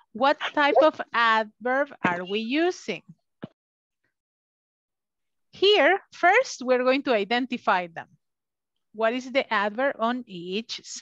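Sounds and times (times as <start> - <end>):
person speaking: 0.2 - 1.2.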